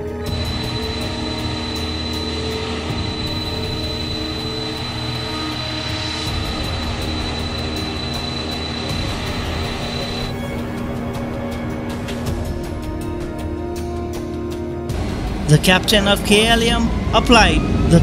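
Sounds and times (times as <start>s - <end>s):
jet engine rush and whine: 0.0s - 11.9s
background music: 0.0s - 18.0s.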